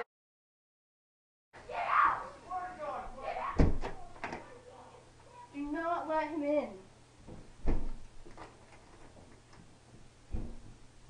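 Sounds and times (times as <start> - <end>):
wooden door banging shut: 3.6 - 4.5, 7.3 - 8.1, 10.3 - 10.8.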